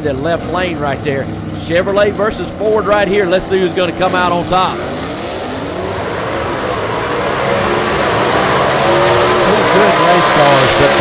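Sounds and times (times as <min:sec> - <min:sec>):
drag car engines accelerating: 0:00.0 - 0:11.0.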